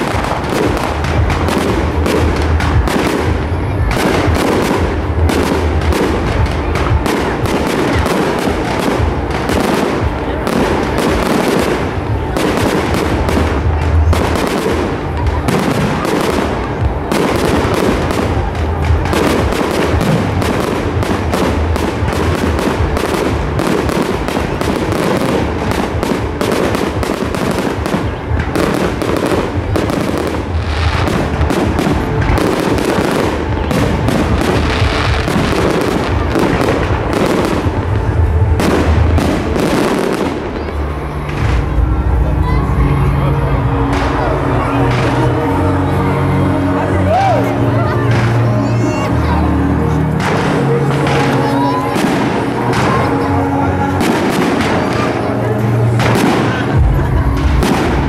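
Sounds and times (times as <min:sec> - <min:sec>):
fireworks bursting and crackling: 0:00.0 - 0:58.0.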